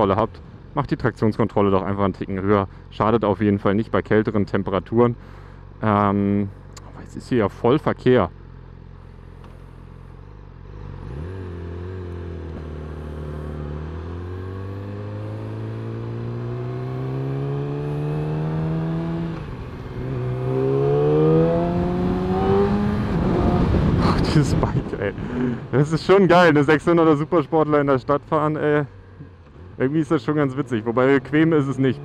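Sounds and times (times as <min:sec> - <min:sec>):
motorcycle engine revving: 0:09.3 - 0:24.2, 0:29.4 - 0:32.0.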